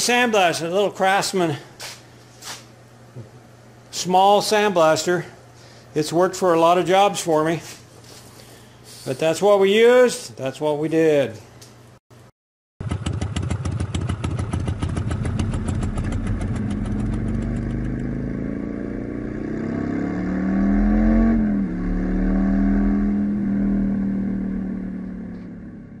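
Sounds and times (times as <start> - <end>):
motorcycle engine running: 12.8 - 26.0.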